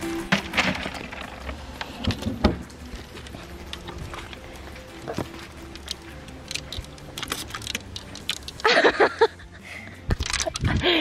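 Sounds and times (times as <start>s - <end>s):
light background music: 0.0s - 11.0s.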